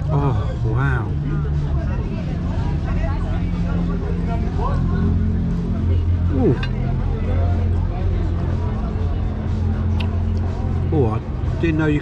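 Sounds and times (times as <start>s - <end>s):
faint background voices: 0.0s - 12.0s
road traffic hum: 0.0s - 12.0s.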